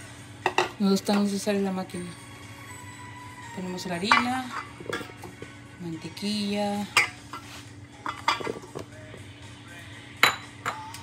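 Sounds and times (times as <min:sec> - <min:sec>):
small dish clinking: 0:08.0 - 0:08.8, 0:10.2 - 0:10.9.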